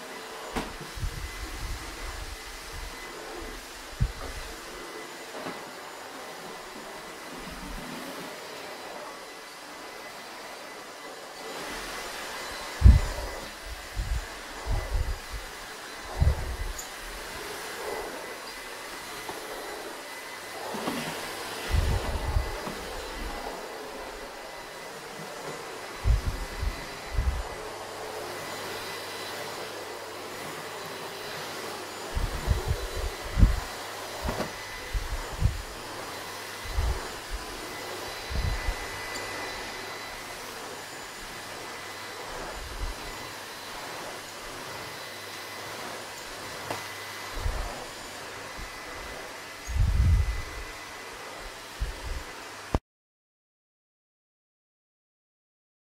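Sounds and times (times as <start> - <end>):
vacuum cleaner running: 0.0 - 52.8.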